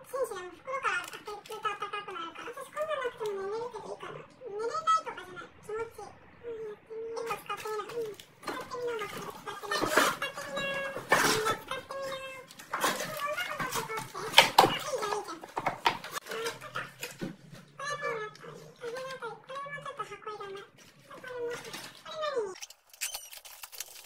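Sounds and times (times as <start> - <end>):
plastic packets rustling: 7.5 - 17.7, 18.8 - 24.0.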